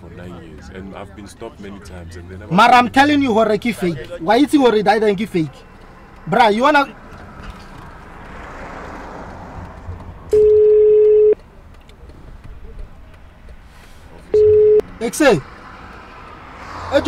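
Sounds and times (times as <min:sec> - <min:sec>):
telephone ringback tone: 0:10.3 - 0:11.4, 0:14.3 - 0:14.8.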